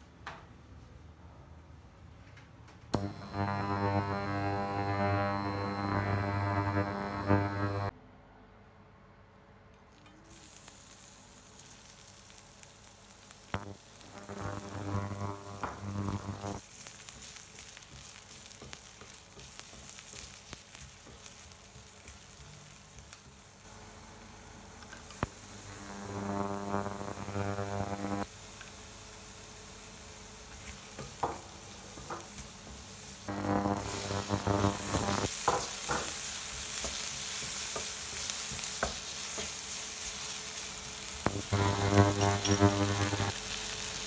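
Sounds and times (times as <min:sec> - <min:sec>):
low steady humming tone: 0:03.0 - 0:07.9, 0:13.6 - 0:16.6, 0:23.7 - 0:28.2
vegetables sizzling in hot oil: 0:10.2 - 0:44.0
wooden spatula scraping and clicking: 0:16.8 - 0:23.2.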